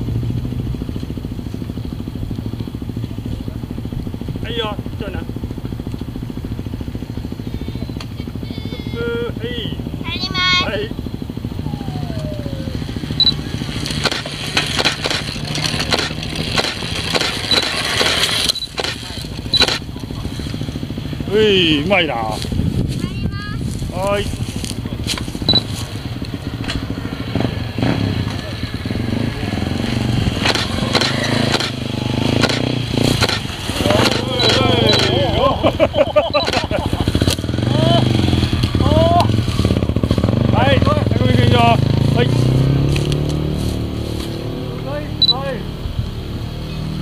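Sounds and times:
motorcycle engine revving: 0.0s - 47.0s
voices calling out: 0.9s - 47.0s.

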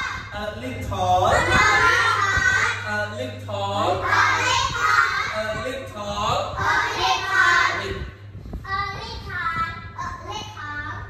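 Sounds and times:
steady low hum: 0.0s - 11.0s
children chanting in unison: 3.9s - 5.4s.

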